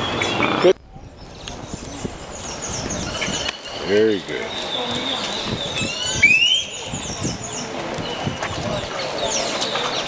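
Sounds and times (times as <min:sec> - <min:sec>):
birds chirping: 0:00.0 - 0:10.0
bird rising whistled call: 0:04.6 - 0:07.1.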